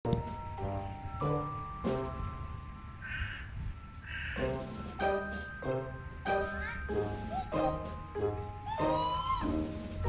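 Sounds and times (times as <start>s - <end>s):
background music: 0.1s - 3.1s, 3.8s - 10.0s
crow cawing: 3.0s - 4.4s.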